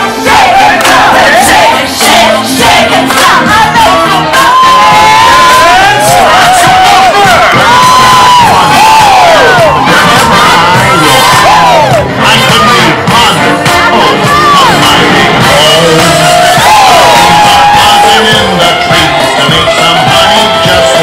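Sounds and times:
crowd shouting and cheering: 0.0s - 21.0s
show music: 0.0s - 21.0s.

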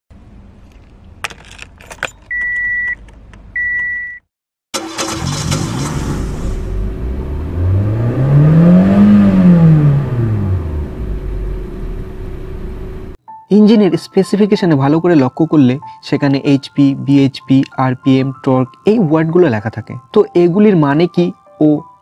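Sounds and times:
car engine revving: 4.8s - 13.2s.

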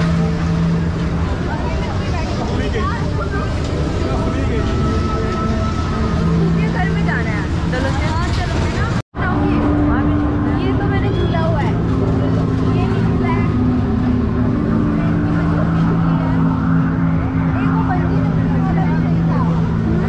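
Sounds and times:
crowd talking and calling: 0.0s - 20.0s
low mechanical hum: 0.0s - 20.0s.

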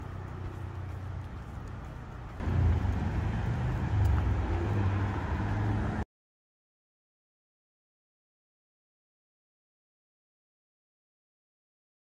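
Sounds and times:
road traffic rumbling: 0.0s - 6.0s
vehicle engine drone: 0.0s - 6.0s.

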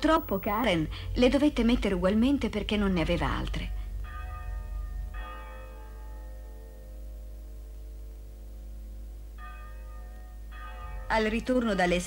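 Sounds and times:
church bell tolling: 0.0s - 12.0s.

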